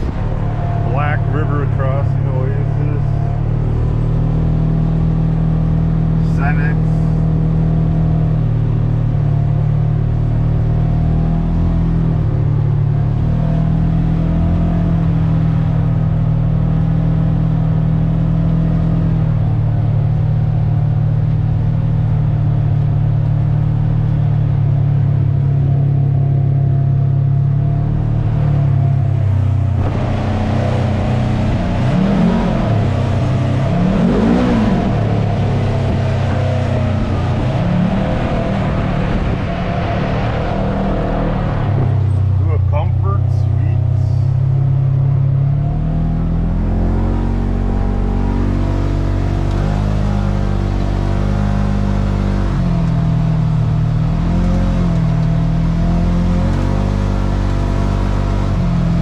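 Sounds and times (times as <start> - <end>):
engine revving in tunnel: 0.0 - 59.0
vehicle engine running: 0.0 - 59.0.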